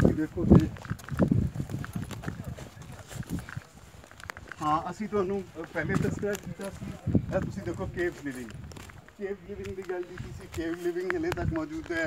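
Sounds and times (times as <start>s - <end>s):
footsteps on loose stones: 0.0s - 12.0s.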